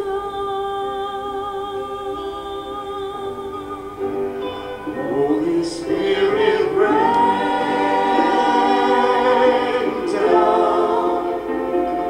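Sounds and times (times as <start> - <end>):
voices singing worship song: 5.0 - 12.0.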